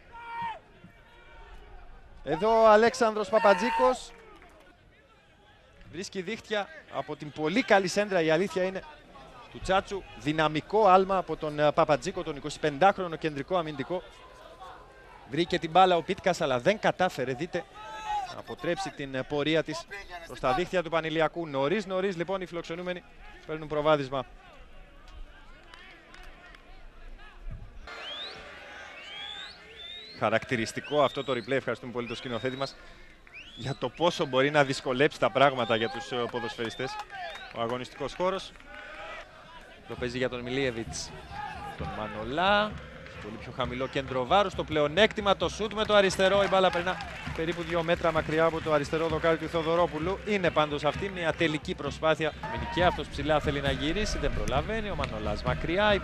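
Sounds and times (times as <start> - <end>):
distant shout: 0.0 - 5.1, 17.4 - 19.1, 24.2 - 44.7, 52.3 - 54.3
faint stadium background: 0.0 - 56.0
short rising whistles: 27.9 - 30.2.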